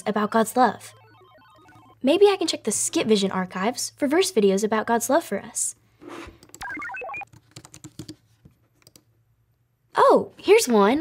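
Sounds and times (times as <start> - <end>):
short rising beep tones: 0.0 - 2.0, 6.6 - 7.2
computer keyboard typing: 6.4 - 8.2, 8.8 - 9.1.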